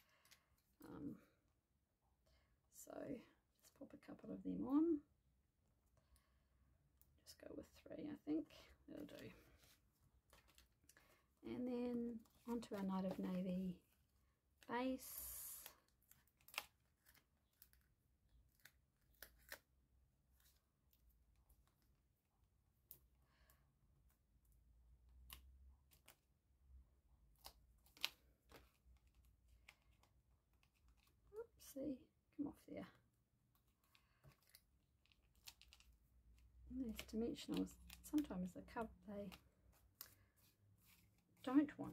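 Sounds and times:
crinkles of peeling adhesive foam: 14.6s - 23.0s, 25.0s - 26.4s, 27.2s - 31.5s, 33.3s - 41.7s.

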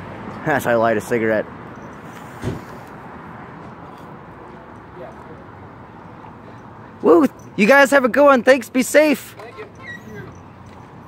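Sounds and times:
street noise: 0.0s - 11.0s.

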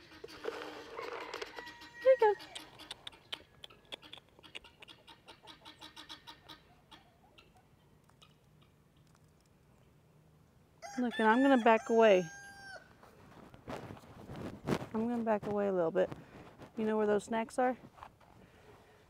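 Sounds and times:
poultry clucking: 0.0s - 8.8s
rustling: 12.9s - 17.0s.

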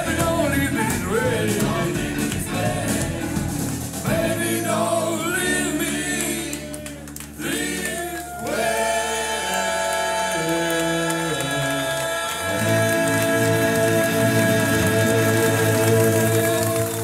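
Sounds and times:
vocal group singing in harmony: 0.0s - 17.0s.

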